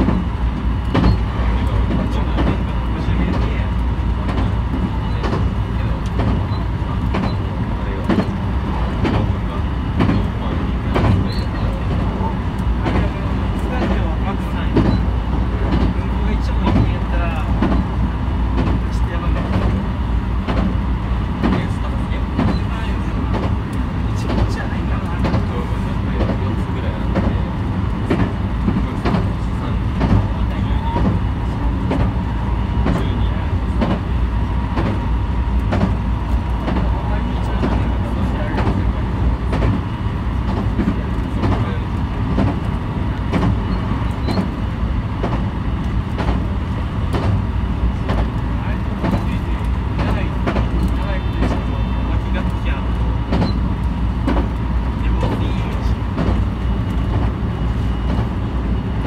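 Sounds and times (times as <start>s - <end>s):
train low rumble: 0.0s - 59.0s
wheels clicking on track: 0.0s - 59.0s.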